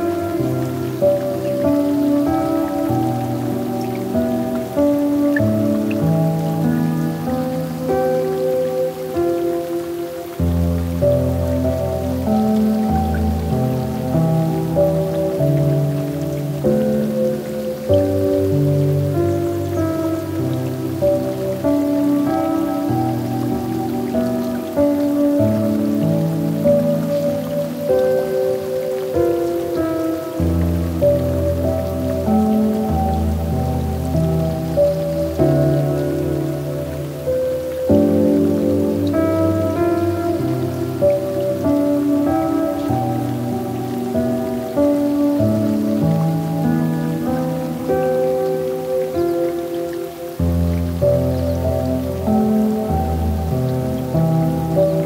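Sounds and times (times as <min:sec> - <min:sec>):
slow gentle piano music: 0:00.0 - 0:55.0
soft rain: 0:00.0 - 0:55.0.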